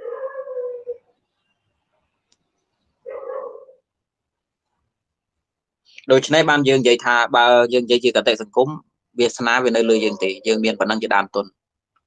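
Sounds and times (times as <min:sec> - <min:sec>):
cat meowing: 0:00.0 - 0:01.0.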